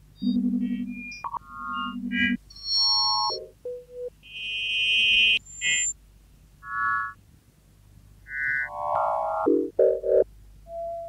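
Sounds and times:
low buzzing pulsed tone: 0:00.2 - 0:02.1.

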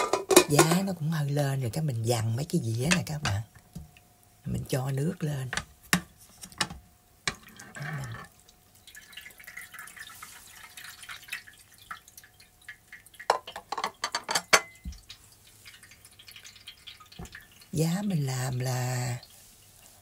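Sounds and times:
ceramic plates clinking: 0:00.0 - 0:00.9, 0:13.3 - 0:14.8
water dripping and trickling: 0:02.8 - 0:05.8, 0:07.3 - 0:20.0.

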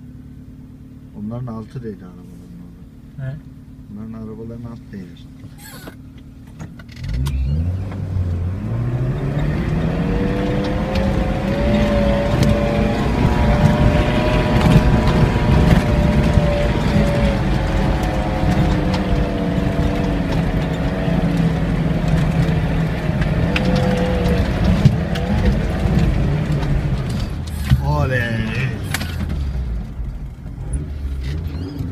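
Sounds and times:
off-road vehicle engine revving: 0:00.0 - 0:31.9.

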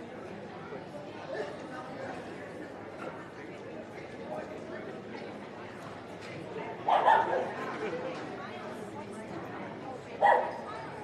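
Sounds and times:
murmur of chatter: 0:00.0 - 0:11.0
dog barking: 0:06.9 - 0:07.4, 0:10.2 - 0:10.6.

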